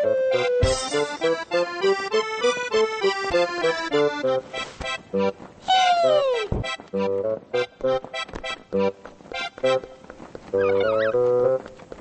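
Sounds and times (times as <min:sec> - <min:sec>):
accordion-like notes: 0:00.0 - 0:11.8.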